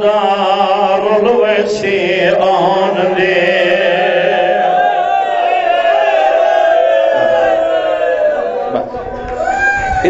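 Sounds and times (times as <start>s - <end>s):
man chanting a melodic lament: 0.0s - 6.4s.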